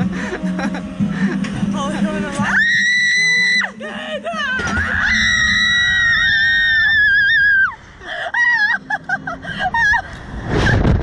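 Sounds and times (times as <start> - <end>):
woman screaming: 2.4 - 8.8.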